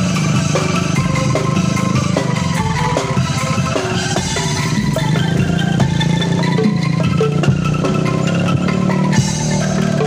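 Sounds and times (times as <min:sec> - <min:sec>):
bamboo bass: 0:00.0 - 0:10.0
bamboo xylophone notes: 0:00.0 - 0:10.0.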